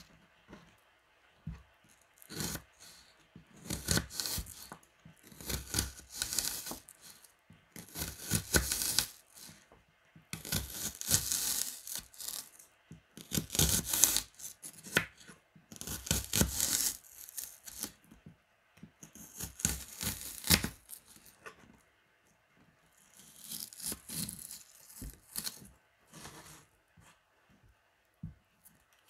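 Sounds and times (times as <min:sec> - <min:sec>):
knife slicing onion on cutting board: 0:02.3 - 0:02.9, 0:03.6 - 0:04.7, 0:05.3 - 0:06.8, 0:07.8 - 0:09.5, 0:10.4 - 0:12.4, 0:13.2 - 0:17.0.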